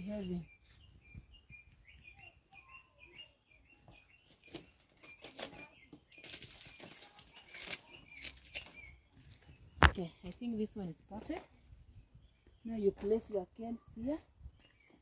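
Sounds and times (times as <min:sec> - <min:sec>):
bird chirping: 0:00.0 - 0:15.0
leaves rustling and crackling: 0:04.4 - 0:09.6.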